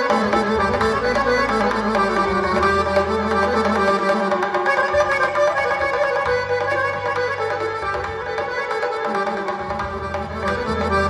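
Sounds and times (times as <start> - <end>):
keyboard: 0.0 - 11.0
violin melody: 0.0 - 11.0.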